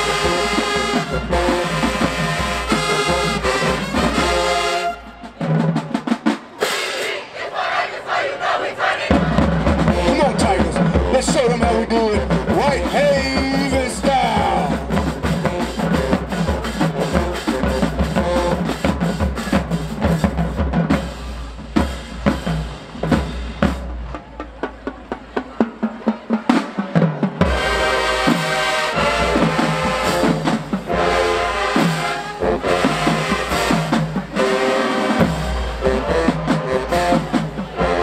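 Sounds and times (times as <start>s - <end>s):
horns playing sustained chords: 0.0s - 5.3s, 27.4s - 38.0s
snare and bass drums: 0.0s - 7.0s, 9.1s - 38.0s
marching band playing: 0.0s - 38.0s.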